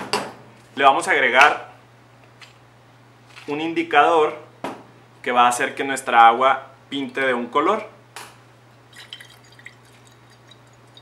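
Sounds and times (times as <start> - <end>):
water swishing in glass flask: 8.9 - 11.0.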